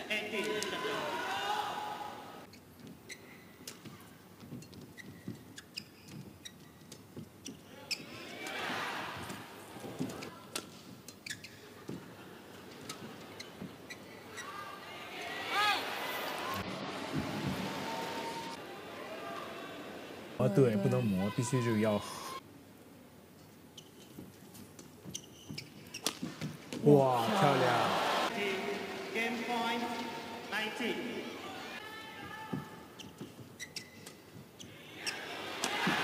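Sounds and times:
shoes squeaking on court: 0:02.5 - 0:08.4, 0:09.2 - 0:14.7, 0:23.4 - 0:26.8, 0:32.3 - 0:36.0
crowd noise: 0:11.7 - 0:22.4, 0:26.8 - 0:33.2, 0:34.6 - 0:36.0.

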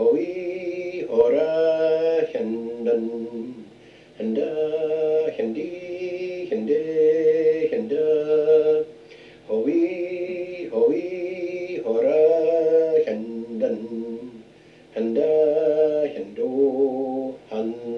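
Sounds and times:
man singing vocables: 0:00.0 - 0:17.9.

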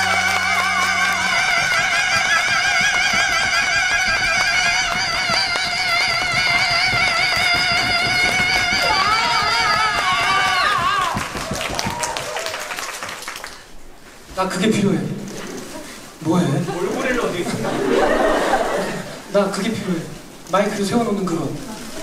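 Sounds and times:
men singing in harmony: 0:00.0 - 0:10.3.

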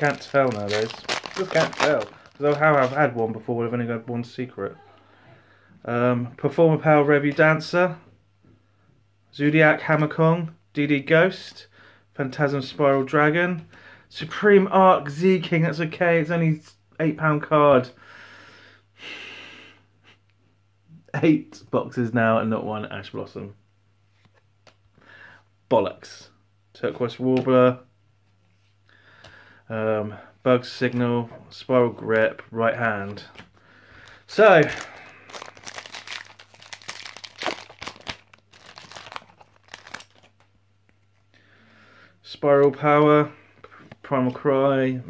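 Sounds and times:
foil wrapper tearing and crinkling: 0:00.0 - 0:03.2, 0:34.3 - 0:40.4.

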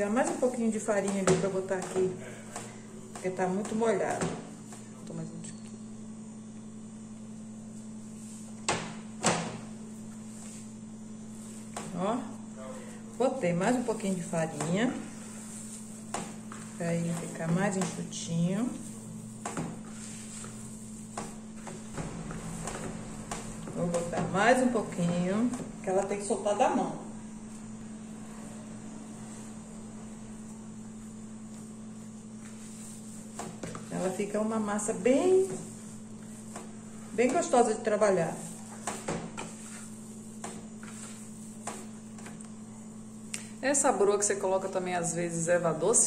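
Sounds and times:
dough patting against a bowl: 0:00.0 - 0:04.9, 0:13.6 - 0:26.3, 0:31.0 - 0:42.6
steady low hum: 0:00.0 - 0:46.0.

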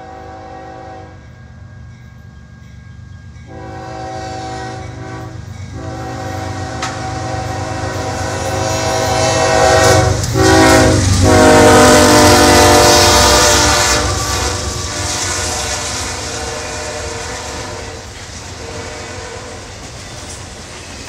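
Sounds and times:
locomotive air horn: 0:00.0 - 0:01.2, 0:03.5 - 0:19.7.

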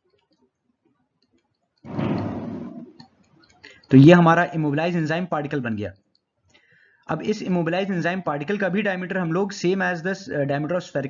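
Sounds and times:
faint clicks: 0:00.0 - 0:02.3, 0:02.9 - 0:04.0.

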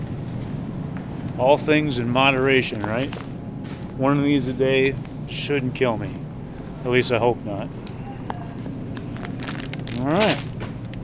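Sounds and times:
store background hum: 0:00.0 - 0:11.0.

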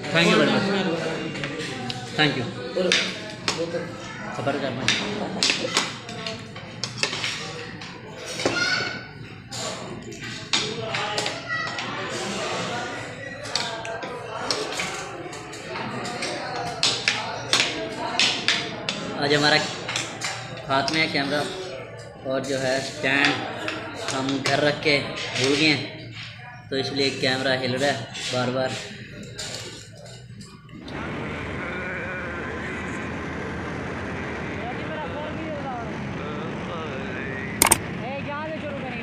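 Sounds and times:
background chatter: 0:00.0 - 0:39.0
faint voices: 0:00.0 - 0:39.0
cutlery scraping plates: 0:04.8 - 0:26.4, 0:27.1 - 0:30.6.

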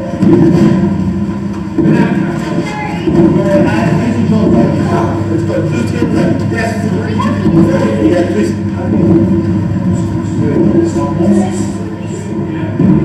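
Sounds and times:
unintelligible voices: 0:01.6 - 0:13.0.

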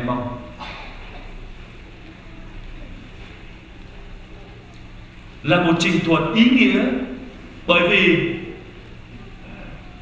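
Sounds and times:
sound system low hum: 0:00.0 - 0:10.0.

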